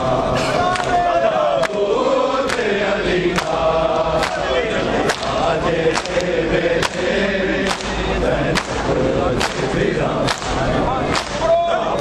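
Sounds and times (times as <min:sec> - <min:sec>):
many voices chanting a lament: 0:00.0 - 0:12.0
men beating their chests: 0:03.4 - 0:11.8.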